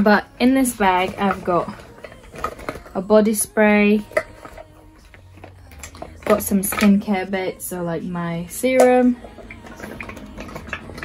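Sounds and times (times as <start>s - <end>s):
plastic bottles knocking together: 0.0s - 7.2s.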